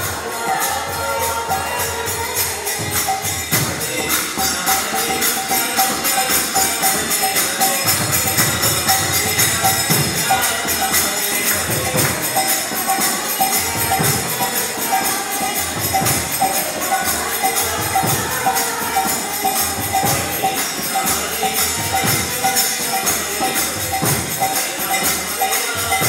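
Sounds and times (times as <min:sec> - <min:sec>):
hand cymbals struck: 0:00.0 - 0:26.0.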